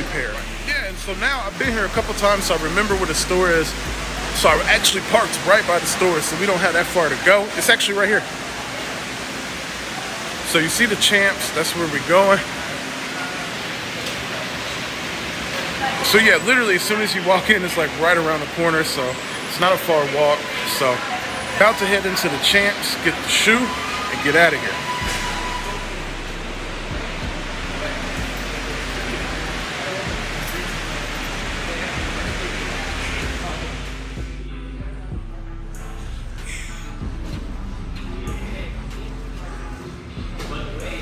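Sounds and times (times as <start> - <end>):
background music: 0.0 - 8.3, 15.9 - 41.0
distant voices of shoppers: 0.0 - 41.0
steady rushing background noise: 0.0 - 41.0.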